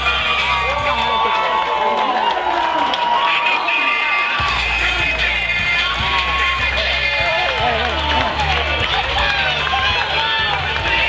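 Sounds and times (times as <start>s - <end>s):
music with pulsing bass: 0.0s - 1.3s, 4.4s - 11.0s
babble of voices: 0.0s - 11.0s.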